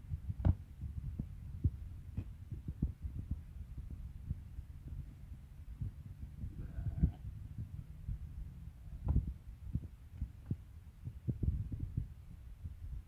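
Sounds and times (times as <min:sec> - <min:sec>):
low rumble: 0:00.0 - 0:13.0
microphone handling thumps: 0:00.1 - 0:05.1, 0:09.0 - 0:12.8.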